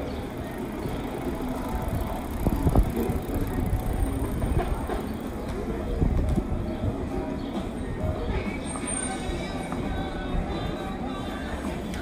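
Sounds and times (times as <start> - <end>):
street noise rumble: 0.0 - 12.0.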